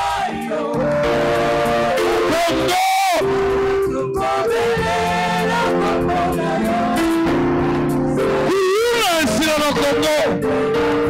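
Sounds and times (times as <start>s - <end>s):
church choir singing: 0.0s - 11.0s.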